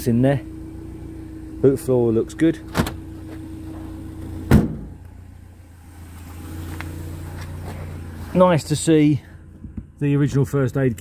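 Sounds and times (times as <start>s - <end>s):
steady low hum: 0.0s - 10.1s
loud thump in car boot: 4.4s - 5.0s.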